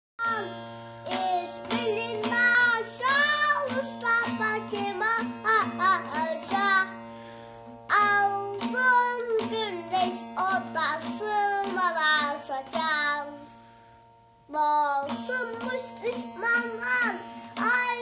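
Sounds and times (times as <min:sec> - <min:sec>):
child singing: 0:00.2 - 0:07.0, 0:07.9 - 0:13.5, 0:14.5 - 0:18.0
long-necked lute strumming: 0:00.2 - 0:18.0.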